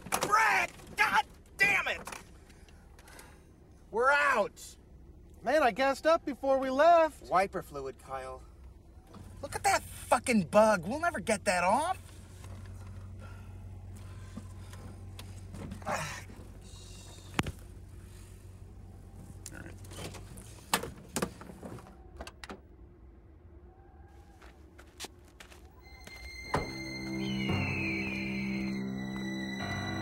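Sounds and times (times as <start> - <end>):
car running hum: 0.0 - 30.0
thunks and clicks: 19.8 - 22.8.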